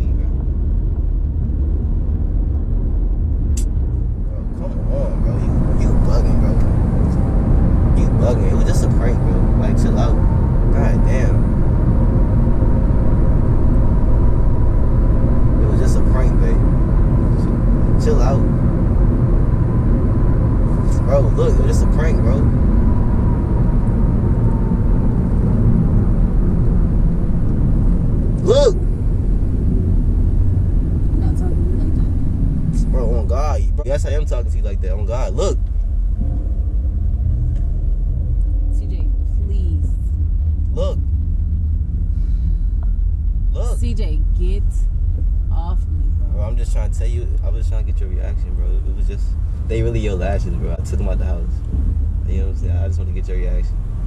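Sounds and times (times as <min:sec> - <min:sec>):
car cabin road rumble: 0:00.0 - 0:54.0.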